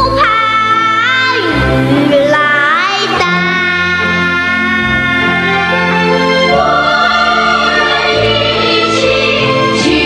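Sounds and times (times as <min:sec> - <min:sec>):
instrumental accompaniment: 0:00.0 - 0:10.0
child singing: 0:02.1 - 0:05.4.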